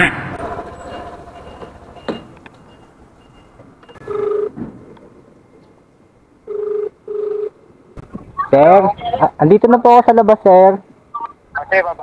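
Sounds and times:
phone ringback tone: 0:00.4 - 0:04.6, 0:06.5 - 0:07.6.

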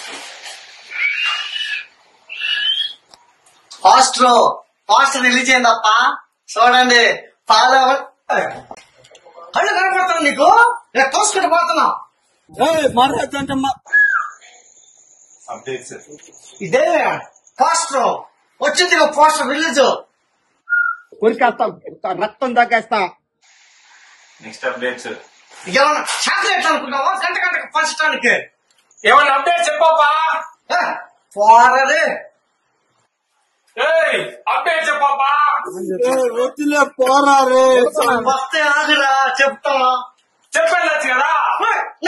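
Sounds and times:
steady hiss: 0:00.0 - 0:02.7, 0:23.4 - 0:30.1
high-pitched squealing cry: 0:00.9 - 0:03.0
man's voice: 0:12.5 - 0:13.8, 0:33.9 - 0:39.6.

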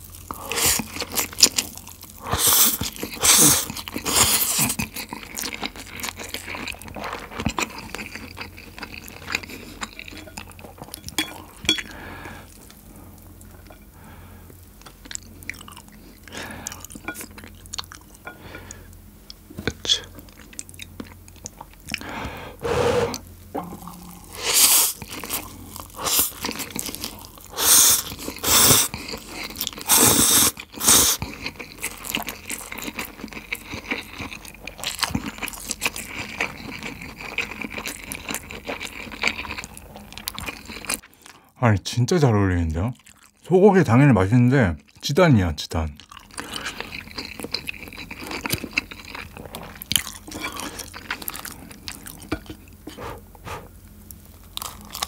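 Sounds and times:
soft wet chewing: 0:00.1 - 0:22.2, 0:23.1 - 0:41.5, 0:42.8 - 0:43.5, 0:46.0 - 0:55.0
loud noodle slurps: 0:02.3 - 0:04.7, 0:22.6 - 0:23.2, 0:27.5 - 0:28.9, 0:29.8 - 0:31.2, 0:52.9 - 0:53.7.

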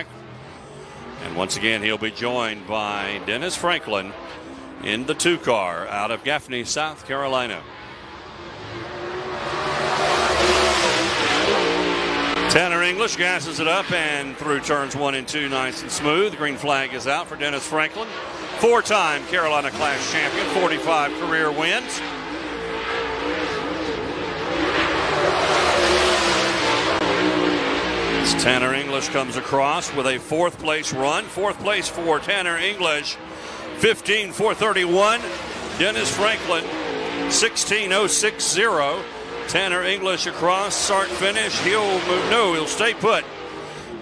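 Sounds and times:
race car engine at full throttle: 0:00.0 - 0:44.0.

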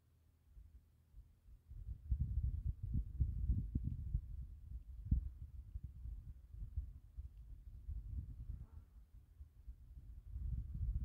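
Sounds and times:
wind buffeting microphone: 0:01.7 - 0:11.0.

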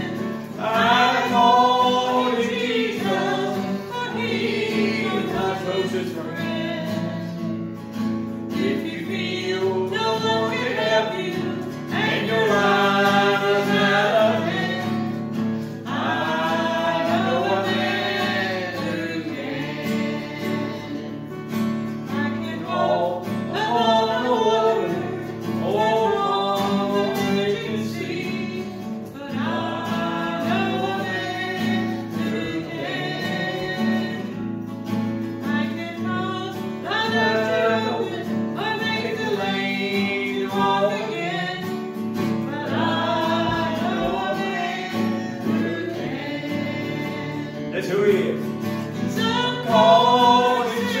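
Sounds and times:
man and woman singing: 0:00.0 - 0:51.0.

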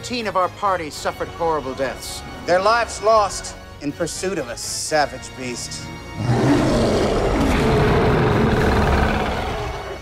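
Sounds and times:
monster roaring: 0:06.2 - 0:10.0.

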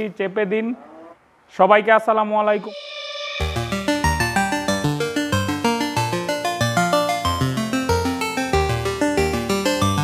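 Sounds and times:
man speaking: 0:00.0 - 0:02.9.

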